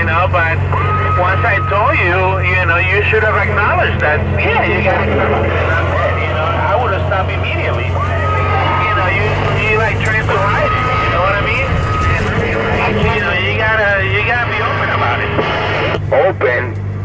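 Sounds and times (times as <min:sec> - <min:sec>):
voices over cb radio: 0:00.0 - 0:16.8
truck engine drone: 0:00.0 - 0:17.0.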